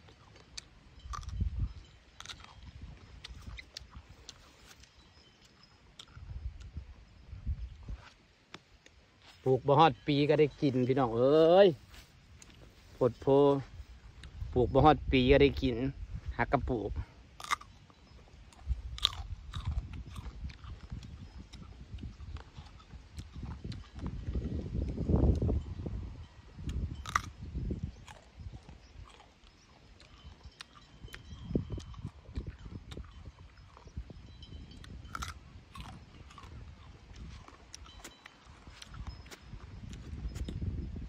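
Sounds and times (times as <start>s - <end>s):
person chewing crunchy fruit: 0.0s - 9.7s, 10.3s - 12.9s, 13.7s - 41.0s.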